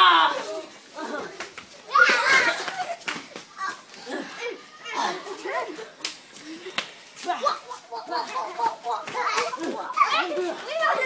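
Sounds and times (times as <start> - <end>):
children shouting and chattering: 0.0 - 11.0.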